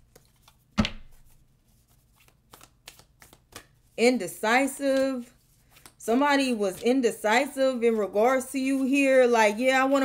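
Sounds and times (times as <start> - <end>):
cards being shuffled: 0.0 - 4.0, 4.7 - 7.0.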